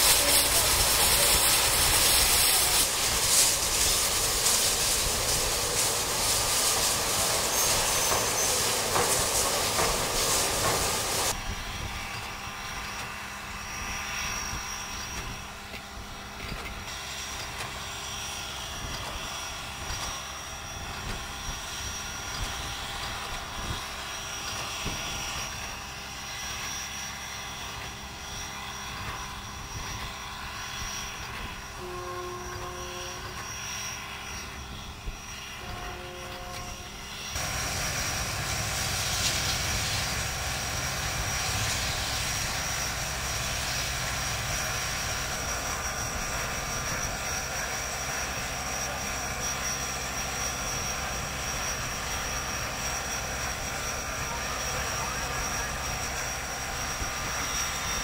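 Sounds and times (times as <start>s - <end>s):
steam hissing: 0.0s - 58.0s.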